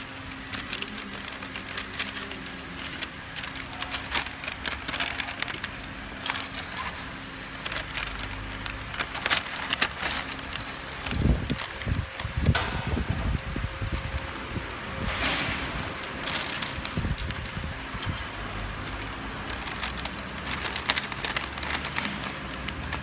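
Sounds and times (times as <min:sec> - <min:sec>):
paper label rustling and crinkling: 0:00.0 - 0:23.0.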